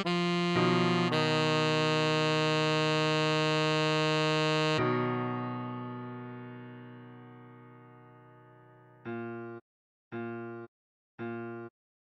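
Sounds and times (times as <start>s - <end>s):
synthesized saxophone note: 0.0s - 5.5s
soft piano-like tone: 0.0s - 9.6s.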